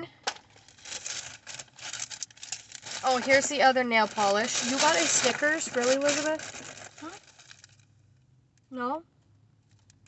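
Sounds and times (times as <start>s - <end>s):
plastic bag rustling: 0.4s - 7.9s.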